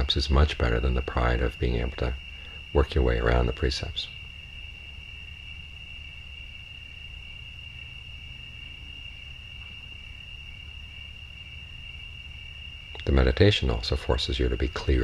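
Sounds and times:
crickets trilling: 0.0 - 15.0
low background rumble: 0.0 - 15.0.

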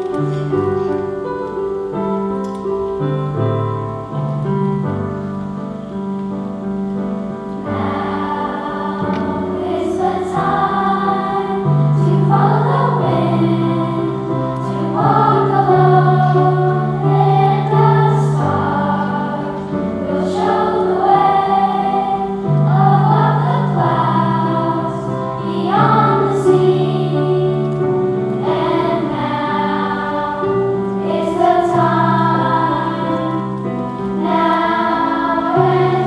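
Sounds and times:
children's choir singing: 0.0 - 2.2, 7.3 - 36.0
piano accompaniment: 0.0 - 36.0.

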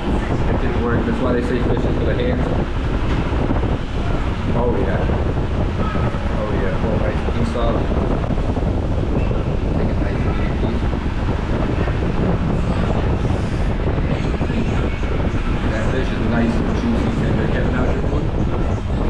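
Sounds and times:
faint voices talking: 0.0 - 19.0
wind buffeting microphone: 0.0 - 19.0.

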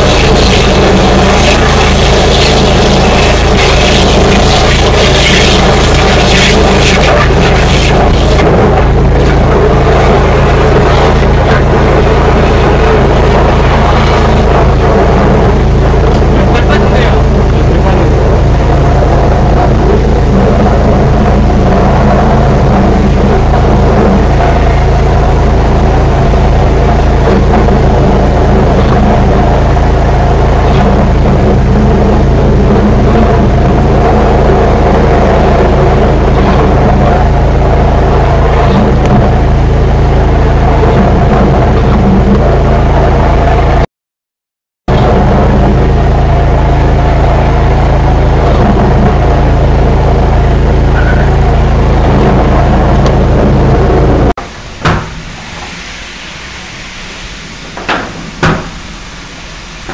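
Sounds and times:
drain-cleaning machine motor: 0.0 - 43.8, 44.9 - 59.9.

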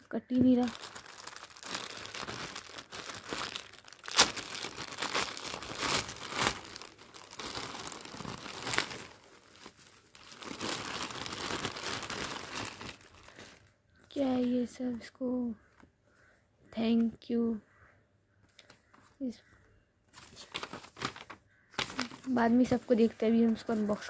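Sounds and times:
plastic mailer bag crinkling and tearing: 0.5 - 13.7, 20.3 - 24.0.

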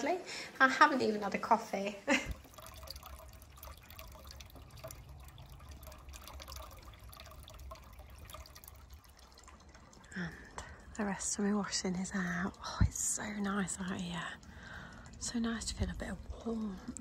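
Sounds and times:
water trickling and dripping: 0.0 - 17.0.

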